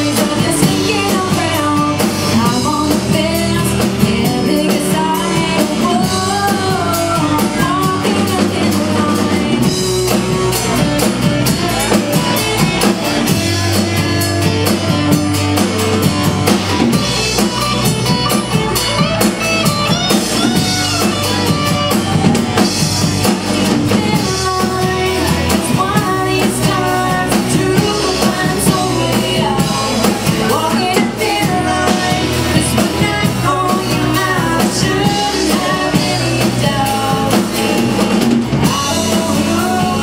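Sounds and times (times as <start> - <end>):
country band playing: 0.0 - 40.0
woman singing lead: 0.0 - 40.0.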